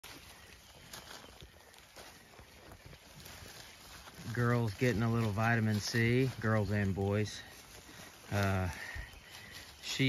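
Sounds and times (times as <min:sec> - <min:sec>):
sheep chewing pine boughs: 0:00.0 - 0:10.0.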